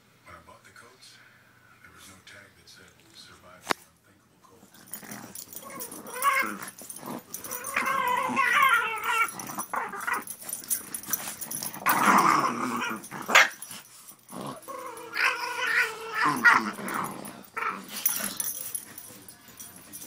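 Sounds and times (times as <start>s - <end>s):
dogs growling in play: 4.6s - 20.0s
dog barking: 13.3s - 13.6s.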